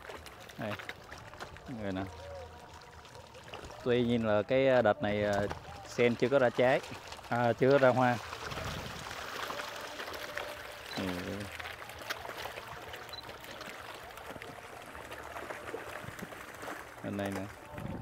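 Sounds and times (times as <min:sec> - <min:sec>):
fish splashing in water: 0:00.0 - 0:04.5, 0:05.2 - 0:18.0.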